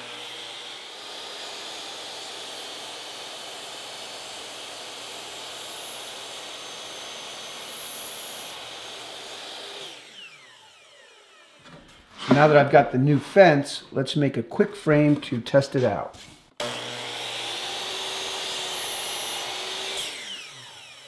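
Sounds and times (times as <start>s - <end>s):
saw blade winding down whine: 0.0s - 11.7s, 16.6s - 21.0s
miter saw cutting wood: 0.0s - 12.7s, 16.6s - 21.0s.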